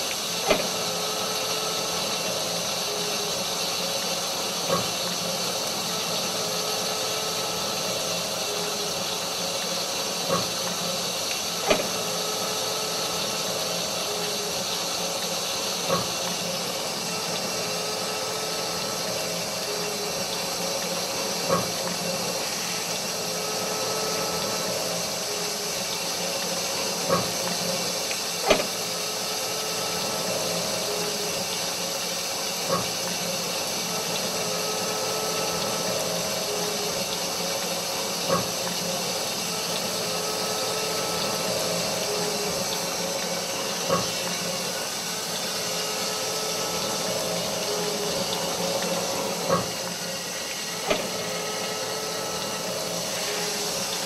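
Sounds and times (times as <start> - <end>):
steady hiss: 0.0 - 54.0.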